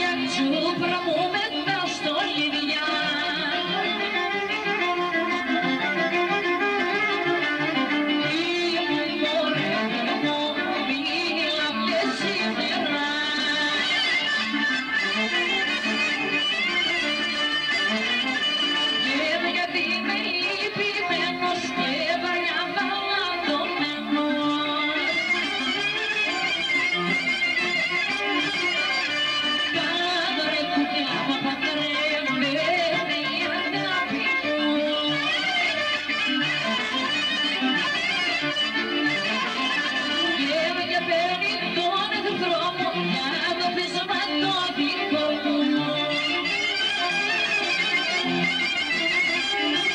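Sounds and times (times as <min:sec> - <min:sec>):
electric guitar: 0:00.0 - 0:49.9
folk dance band music: 0:00.0 - 0:49.9
harmonium keyboard: 0:00.0 - 0:49.9
clarinet: 0:13.8 - 0:19.1, 0:34.8 - 0:40.4, 0:45.8 - 0:49.9.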